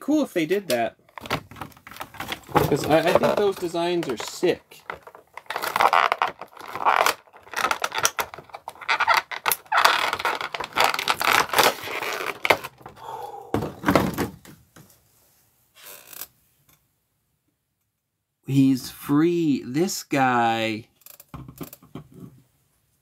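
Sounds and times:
plastic packaging rustling: 1.1s - 13.0s.

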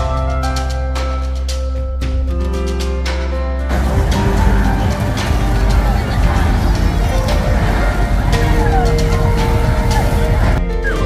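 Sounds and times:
music: 0.0s - 11.0s
ride motor rumble: 3.7s - 10.6s
voices: 3.7s - 11.0s.

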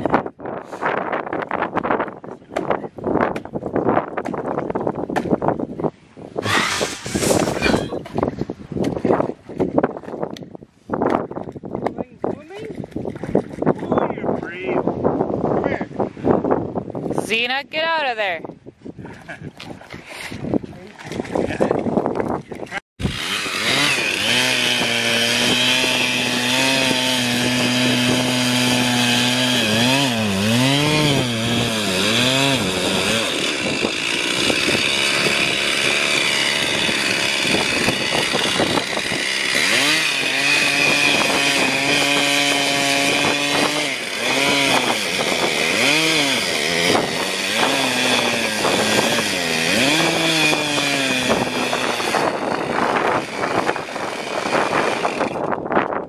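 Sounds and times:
chainsaw cutting log: 6.4s - 8.0s, 23.0s - 55.8s.

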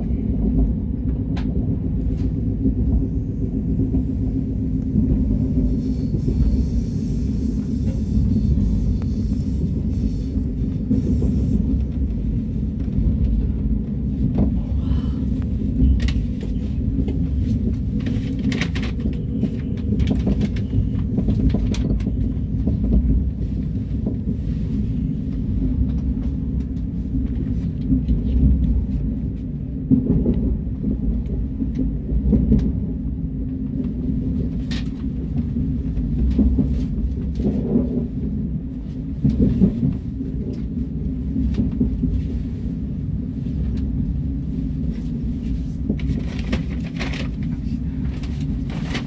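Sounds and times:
train rumble inside cabin: 0.0s - 49.0s.

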